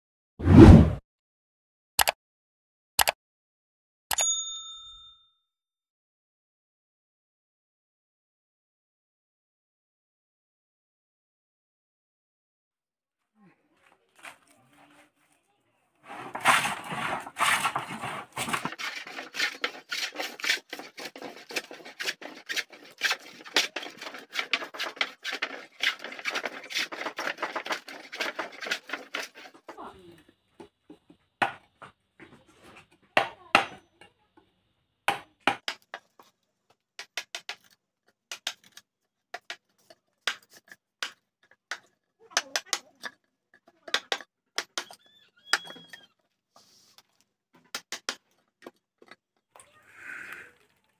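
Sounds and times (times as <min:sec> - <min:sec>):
hand plane shaving wood: 0:16.0 - 0:29.8
hammer striking chisel: 0:33.2 - 0:33.8, 0:35.1 - 0:35.9, 0:47.7 - 0:48.2.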